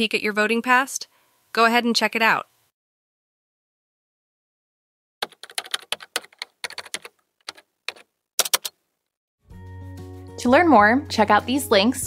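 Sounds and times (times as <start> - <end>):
computer keyboard typing: 5.2 - 8.8.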